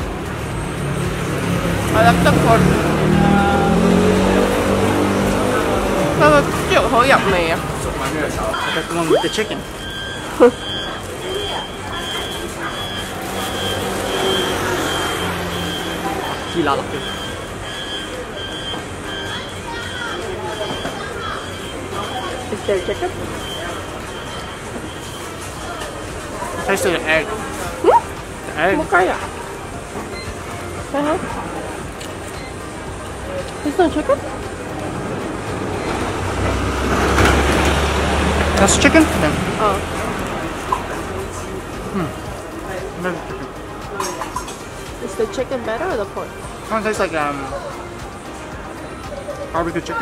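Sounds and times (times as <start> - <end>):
vehicle passing close by: 0.8 - 7.8, 35.5 - 41.4
high-pitched electronic beeper: 8.5 - 19.3.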